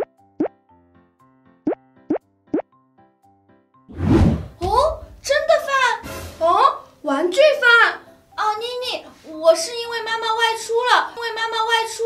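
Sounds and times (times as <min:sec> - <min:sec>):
light children's music: 0:04.6 - 0:12.0.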